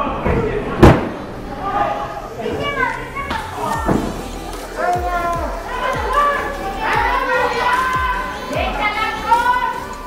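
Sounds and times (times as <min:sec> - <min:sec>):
voices calling out: 0:00.0 - 0:10.0.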